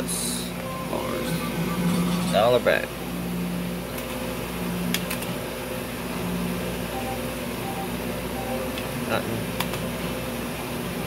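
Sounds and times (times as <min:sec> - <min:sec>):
low electronic tones: 0:00.0 - 0:03.9, 0:06.9 - 0:08.8
steady background hum: 0:00.0 - 0:11.0
short beeps: 0:00.6 - 0:03.3, 0:06.9 - 0:08.7.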